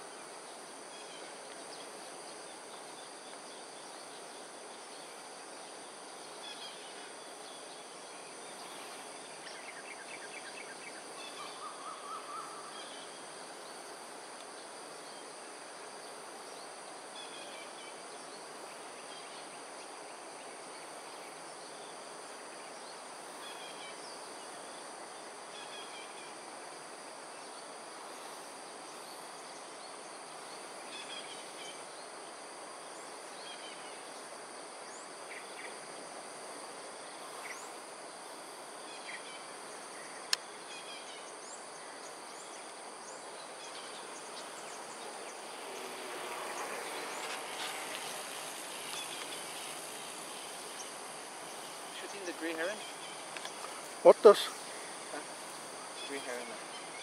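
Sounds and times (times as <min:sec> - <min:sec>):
background hiss: 0:00.0 - 0:57.0
crickets and insects chorus: 0:00.0 - 0:57.0.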